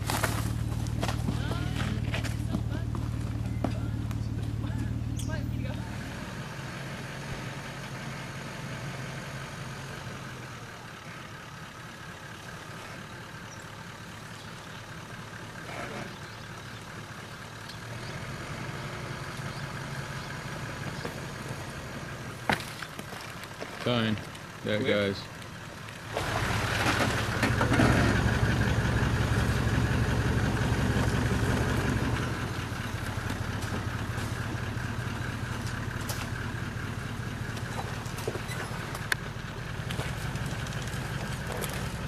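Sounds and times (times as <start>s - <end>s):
close low engine note: 0.0s - 42.0s
distant engine working slowly: 0.0s - 42.0s.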